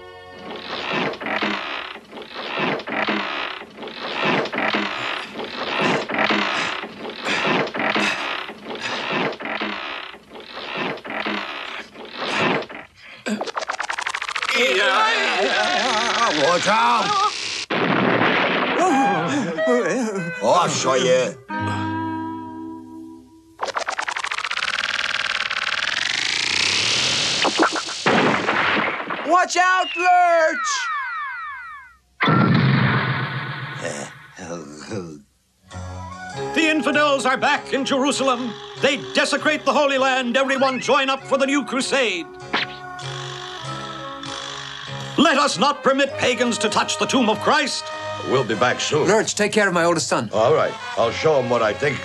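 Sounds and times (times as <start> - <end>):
wooden wheel creaking and ratcheting: 0.4 - 12.9.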